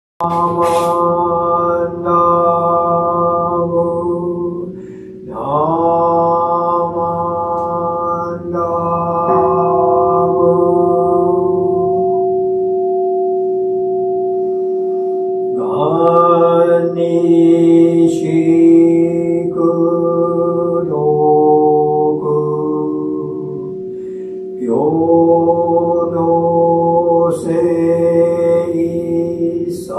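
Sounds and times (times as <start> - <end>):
man chanting in held tones: 0.2 - 12.0, 15.6 - 29.9.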